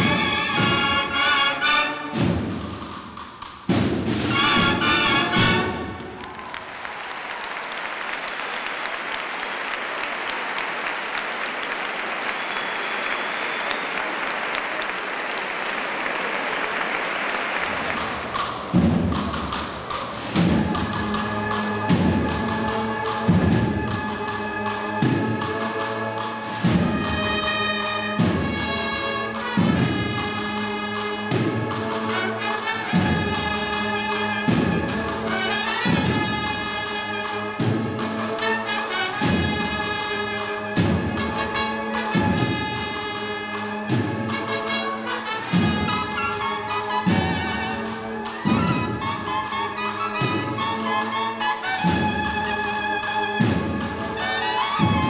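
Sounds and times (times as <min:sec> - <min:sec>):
drum roll: 0:02.0 - 0:07.5, 0:08.2 - 0:24.3, 0:28.1 - 0:30.4, 0:31.3 - 0:36.9, 0:39.1 - 0:40.2, 0:40.8 - 0:43.2, 0:43.9 - 0:51.1, 0:51.7 - 0:55.0
held brass chord: 0:04.3 - 0:06.1
heavy drum strokes: 0:18.2 - 0:24.1
held cornet notes: 0:38.3 - 0:55.0.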